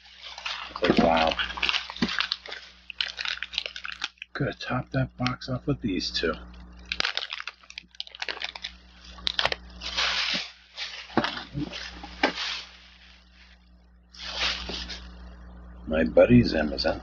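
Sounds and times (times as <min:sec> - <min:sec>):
plastic bag rustling: 0:00.0 - 0:04.3, 0:06.8 - 0:15.2
foil packs crinkling: 0:00.0 - 0:04.5, 0:06.8 - 0:13.6, 0:14.2 - 0:15.1.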